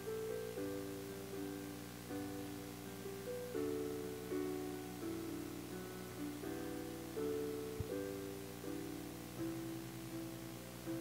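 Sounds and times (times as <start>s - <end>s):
keyboard playing slow chords: 0.0s - 11.0s.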